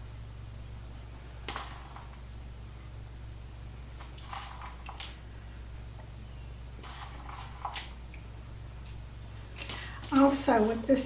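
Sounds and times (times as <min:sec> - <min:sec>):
faint high whine: 0:00.0 - 0:11.0
low room hum: 0:00.0 - 0:11.0.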